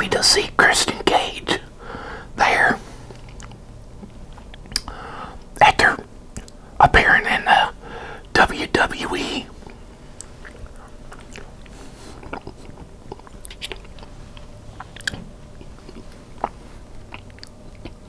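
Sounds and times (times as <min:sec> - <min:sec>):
soft chewing with lip smacks: 0:03.0 - 0:05.6, 0:06.3 - 0:06.7, 0:09.5 - 0:18.0
wet bite: 0:04.4 - 0:04.9.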